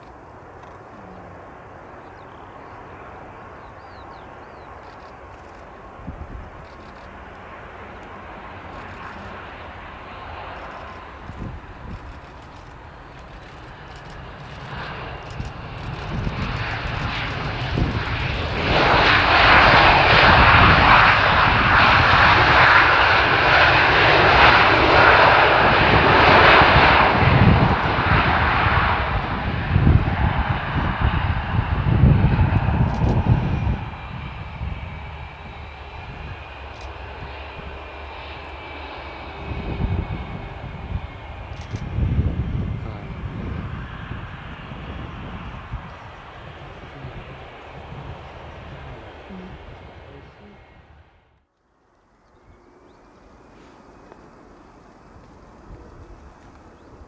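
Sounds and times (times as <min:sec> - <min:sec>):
jet engines running: 0:00.0 - 0:57.0.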